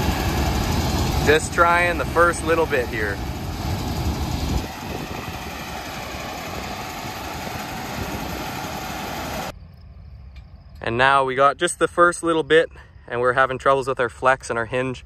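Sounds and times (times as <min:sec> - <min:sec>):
combine harvester running: 0:00.0 - 0:09.5.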